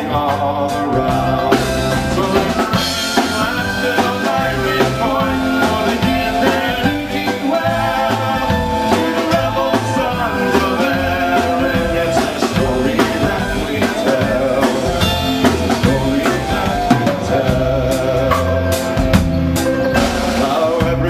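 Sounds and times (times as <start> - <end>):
bass guitar: 0.0 - 21.0
drum kit: 0.0 - 21.0
tin whistle melody: 1.8 - 17.7.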